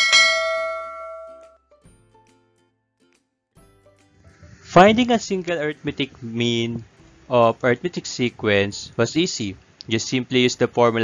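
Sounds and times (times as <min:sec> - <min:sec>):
notification bell ding: 0:00.0 - 0:01.6.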